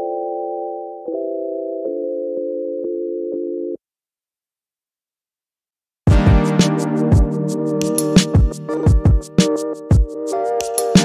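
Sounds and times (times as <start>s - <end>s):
sustained music chords: 6.1s - 9.3s.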